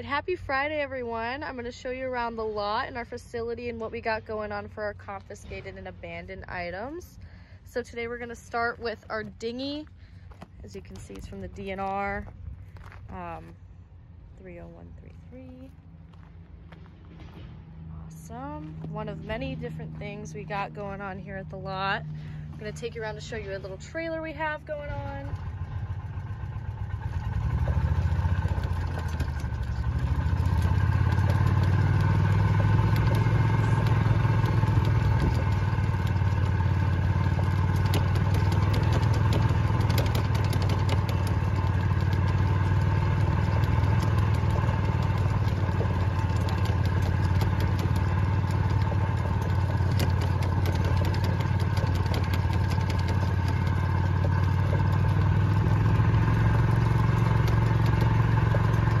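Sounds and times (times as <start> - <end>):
vehicle engine running: 0.0 - 59.0
light rattles and clicks: 24.9 - 59.0.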